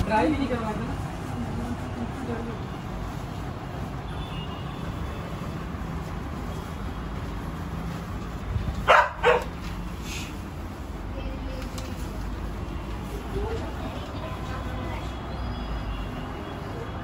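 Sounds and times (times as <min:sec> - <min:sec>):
dog barking: 0:08.8 - 0:09.5.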